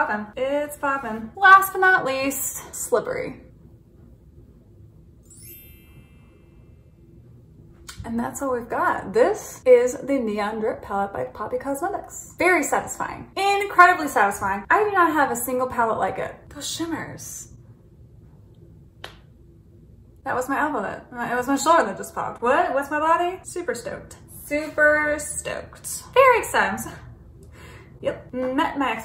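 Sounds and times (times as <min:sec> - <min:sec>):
high glittering chime sweeping down: 0:05.2 - 0:06.9.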